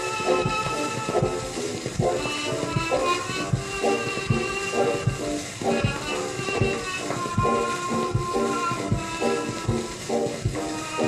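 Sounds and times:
jazz orchestra playing slow blues: 0.0s - 11.0s
record surface hiss: 0.0s - 11.0s.

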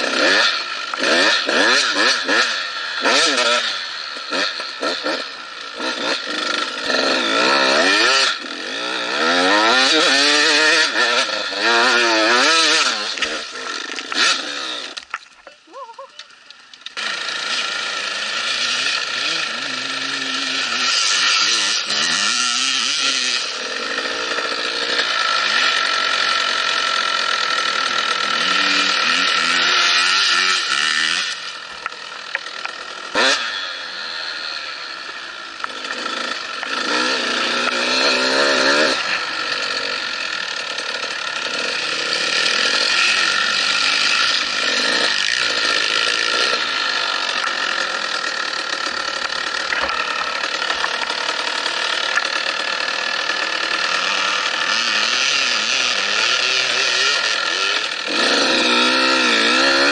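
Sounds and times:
dirt bike engine revving: 0.0s - 15.2s, 15.9s - 59.9s.

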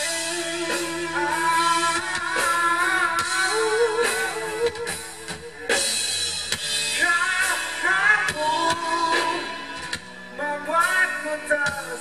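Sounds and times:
live pop-rock band: 0.0s - 12.0s.

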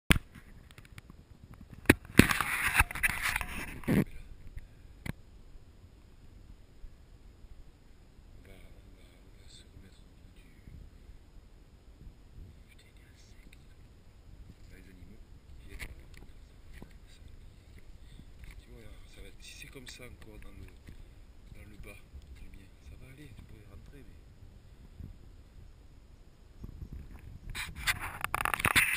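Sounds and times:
camera handling noise: 0.1s - 4.1s, 27.1s - 28.9s
rubbing and scraping noises: 0.1s - 4.2s, 26.9s - 28.9s
rubbing and scraping on camera: 0.1s - 4.3s, 14.4s - 23.6s, 26.6s - 28.9s
faint low rumble: 2.8s - 28.6s.

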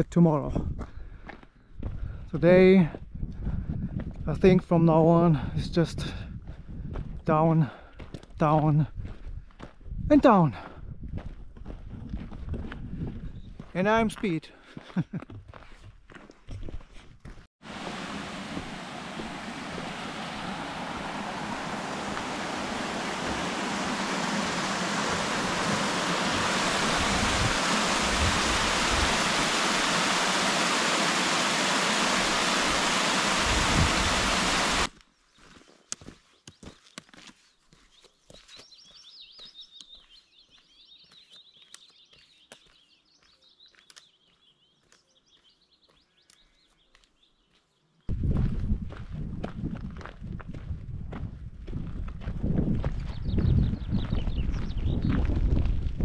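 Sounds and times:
waterfall rushing over rocks: 17.6s - 34.9s
birds chirping: 17.8s - 48.0s, 52.8s - 55.3s.

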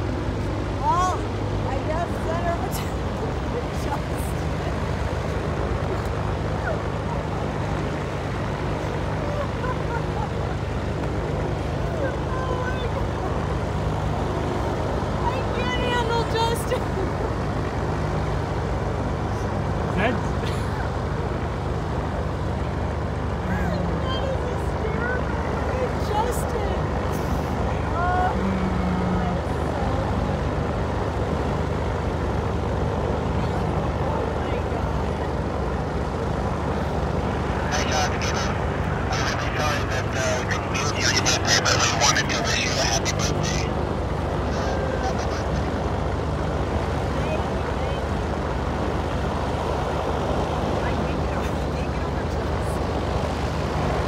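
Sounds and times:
faint distant voices: 0.0s - 54.0s
low engine drone: 0.0s - 54.0s.

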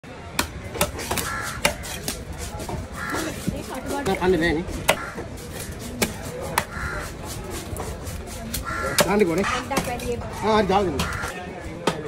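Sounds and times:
cleaver chopping on wooden block: 0.3s - 2.8s, 4.8s - 5.2s, 5.9s - 6.8s.

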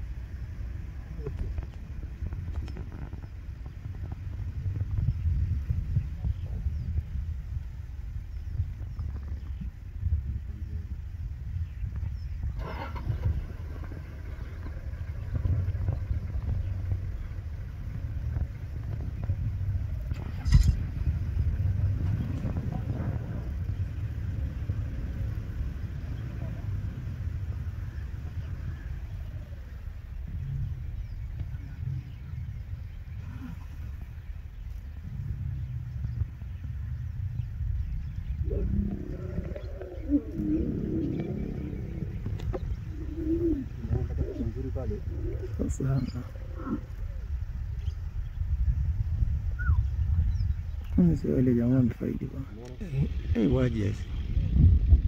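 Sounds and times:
low background rumble: 0.0s - 55.0s
faint voices: 38.4s - 47.4s.

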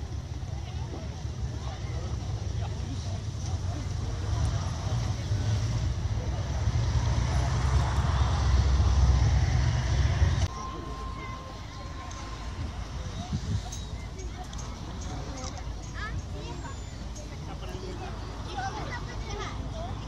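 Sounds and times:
low rumbling noise: 0.0s - 15.8s
murmur of people talking: 0.0s - 20.0s.

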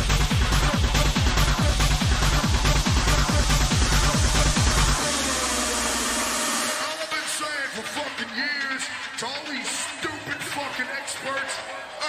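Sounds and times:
pounding kick drum: 0.0s - 6.2s
bass: 0.0s - 7.7s.

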